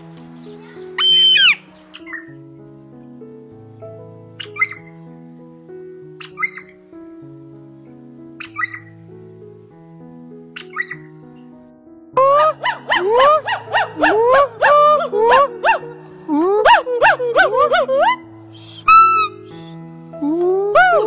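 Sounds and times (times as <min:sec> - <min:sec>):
slow sustained background music: 0:00.0 - 0:21.0
hawk screaming: 0:01.0 - 0:01.6, 0:12.3 - 0:15.8
short bird call: 0:01.0 - 0:02.2.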